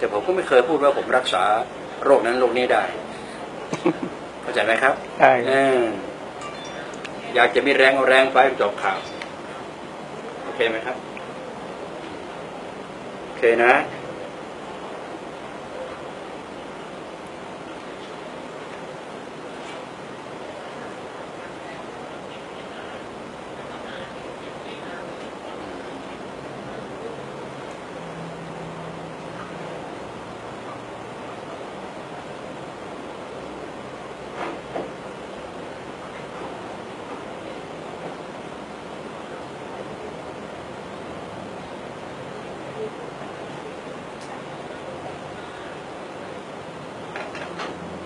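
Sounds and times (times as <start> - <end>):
steady background hiss: 0.0 - 48.0.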